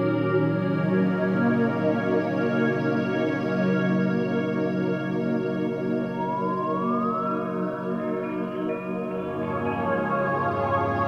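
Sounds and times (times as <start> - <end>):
sustained organ-like synth chords: 5.9 - 10.1
high synth lead gliding upward: 6.0 - 9.0.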